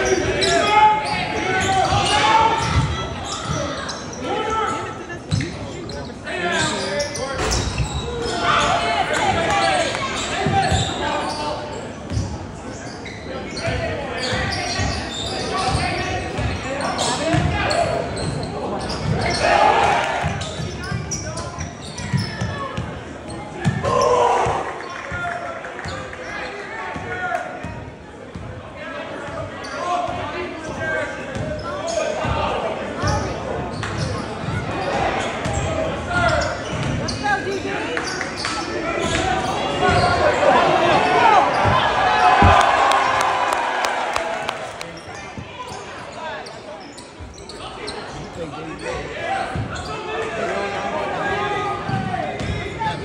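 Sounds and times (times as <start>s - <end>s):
basketball bouncing on hardwood: 42.4s - 43.1s.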